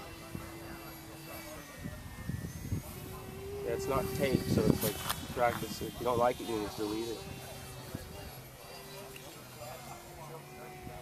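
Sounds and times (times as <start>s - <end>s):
model jet motor whine: 0.0s - 11.0s.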